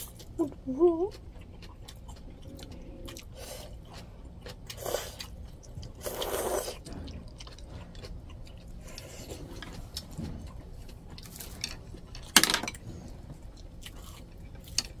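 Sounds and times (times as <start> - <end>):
slurping and chewing noodles: 0.0 - 12.1.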